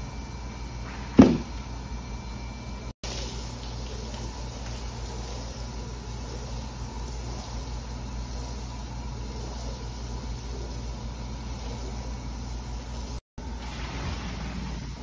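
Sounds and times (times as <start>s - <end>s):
low machine hum: 0.0s - 15.0s.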